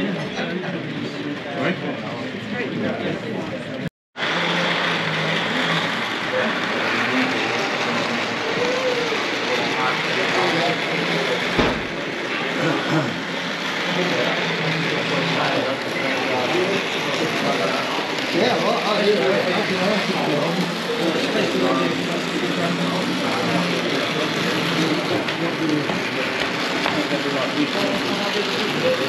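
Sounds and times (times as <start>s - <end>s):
crowd chatter: 0.0s - 29.0s
brief thump: 11.6s - 12.0s.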